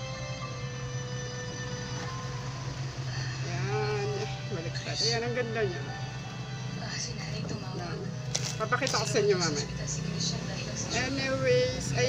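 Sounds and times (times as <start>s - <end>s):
faint steady tones: 0.0s - 12.0s
low machine hum: 0.0s - 12.0s.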